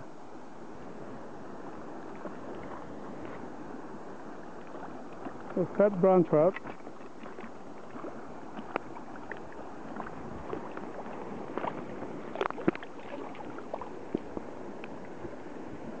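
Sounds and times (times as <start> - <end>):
river water flowing: 0.0 - 16.0
fish splashing at the surface: 7.2 - 14.3.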